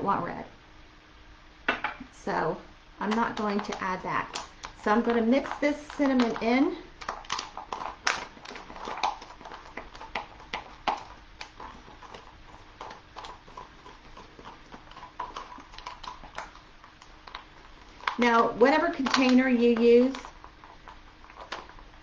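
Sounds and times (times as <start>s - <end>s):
mixing tool tapping container: 3.0s - 21.8s.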